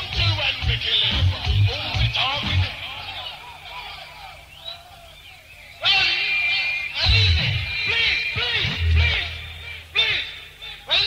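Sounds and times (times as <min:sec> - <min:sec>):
faint voices: 0:00.0 - 0:11.0
loud dancehall music with voice: 0:00.0 - 0:11.0.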